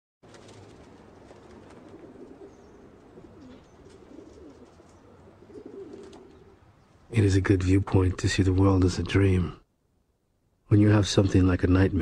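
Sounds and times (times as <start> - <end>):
pigeons cooing: 0.4 - 7.1.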